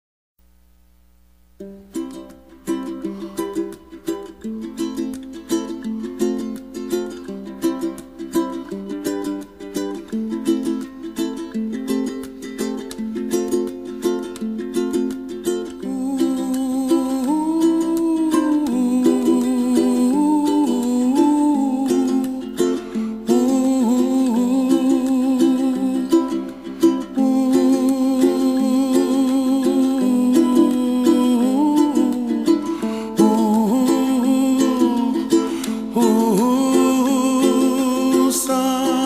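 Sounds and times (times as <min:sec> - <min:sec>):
strummed ukulele: 0:01.6 - 0:39.0
man humming: 0:15.8 - 0:39.0.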